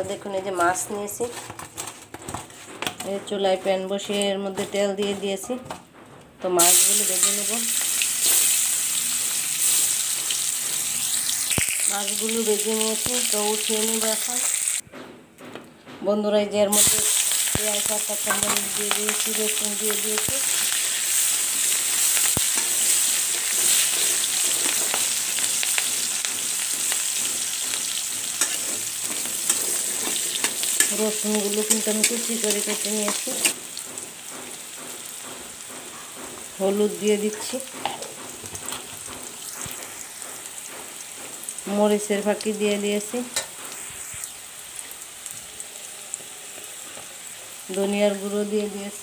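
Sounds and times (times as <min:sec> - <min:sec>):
vegetables sizzling in hot oil: 0:06.6 - 0:14.8, 0:16.7 - 0:49.0
spatula scraping metal pan: 0:20.4 - 0:33.6.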